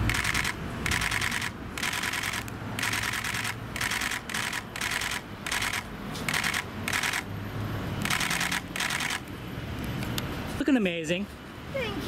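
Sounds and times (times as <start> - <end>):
camera shutter clicks: 0.0 - 7.3, 8.0 - 9.3.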